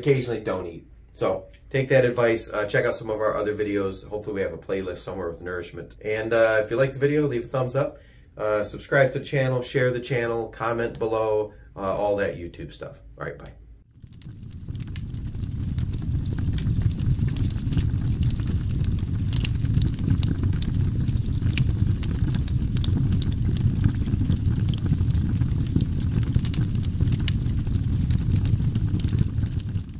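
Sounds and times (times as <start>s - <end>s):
small crackles and pops: 13.4s - 29.9s
steady low rumble: 14.0s - 29.9s.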